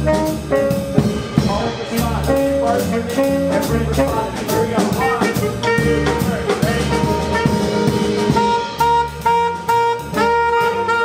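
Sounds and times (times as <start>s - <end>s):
jazz band playing live: 0.0s - 11.0s.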